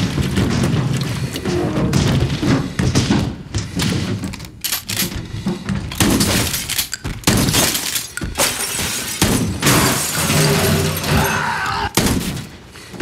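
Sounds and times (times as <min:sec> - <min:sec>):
fight crashes and thuds: 0:00.0 - 0:04.3, 0:05.8 - 0:12.6.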